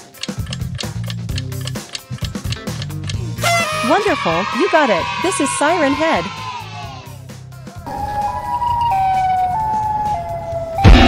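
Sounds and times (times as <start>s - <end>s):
siren-like tone stepping down: 7.9s - 11.0s.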